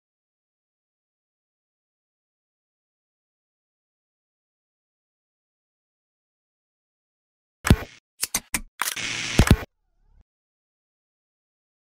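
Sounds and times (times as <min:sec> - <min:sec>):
camera shutter clicks: 0:07.7 - 0:09.7.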